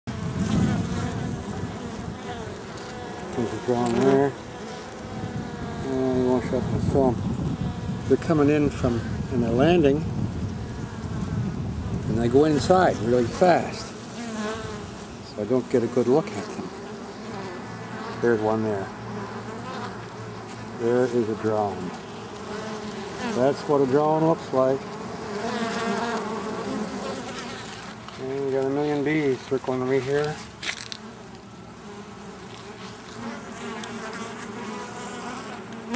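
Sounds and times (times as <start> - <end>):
honey bees buzzing: 0.1 - 35.9.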